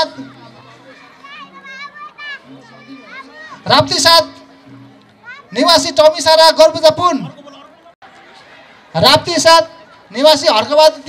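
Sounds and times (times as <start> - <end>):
children calling: 0.0 - 4.5, 5.1 - 6.0.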